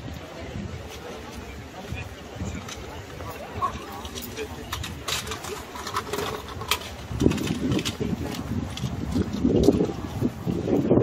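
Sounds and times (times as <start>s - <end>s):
passers-by talking: 0.0s - 11.0s.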